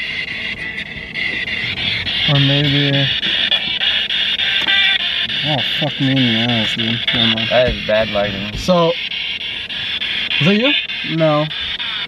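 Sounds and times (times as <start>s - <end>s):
pitched tones: 0.0s - 12.0s
radio static chopped up: 0.0s - 12.0s.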